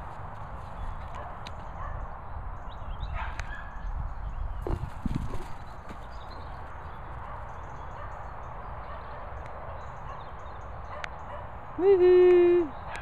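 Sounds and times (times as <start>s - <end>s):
wind rumble: 0.0s - 8.7s.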